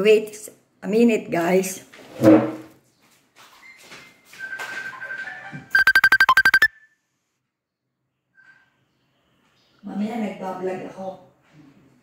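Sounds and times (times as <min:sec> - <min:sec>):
electronic ringtone: 0:05.3 - 0:06.7.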